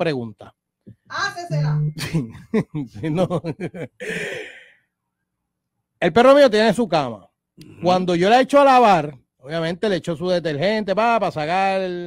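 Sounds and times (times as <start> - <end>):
person sighing after laugh: 4.0 - 4.8.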